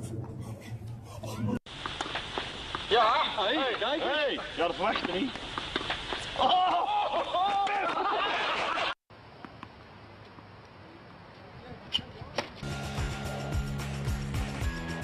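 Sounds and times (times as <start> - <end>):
faint tennis court ambience: 0.0 - 13.4
background music with steady beat: 12.6 - 15.0.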